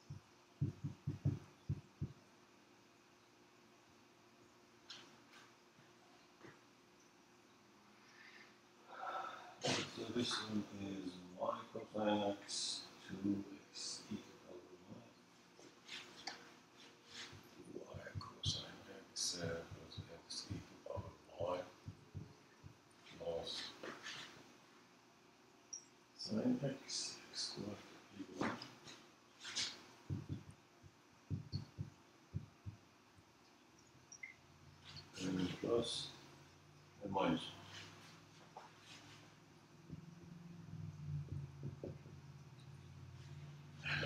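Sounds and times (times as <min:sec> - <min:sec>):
marker writing on whiteboard: 0:00.0 - 0:02.2, 0:29.4 - 0:30.6, 0:31.3 - 0:32.8
man breathing: 0:08.1 - 0:09.7.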